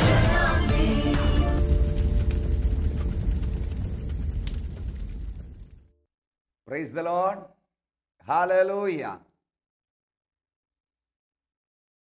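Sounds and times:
deep rumbling boom: 0:01.6 - 0:05.9.

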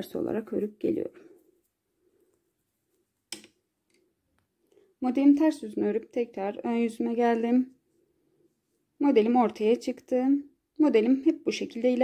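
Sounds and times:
knitting needles clicking: 0:03.3 - 0:04.5.

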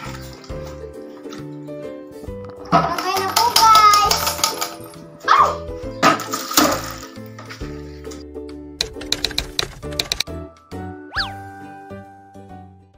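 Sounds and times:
background music of held notes: 0:00.0 - 0:12.9.

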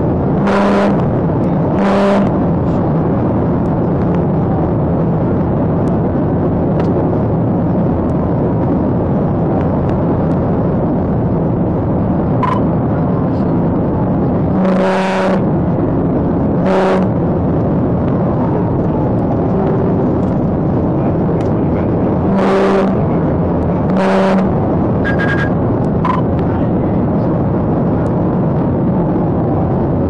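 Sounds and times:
car road and engine noise: 0:00.0 - 0:30.0
short horn blasts: 0:00.4 - 0:02.4, 0:14.5 - 0:15.5, 0:16.6 - 0:17.2, 0:22.2 - 0:23.1, 0:23.9 - 0:26.2.

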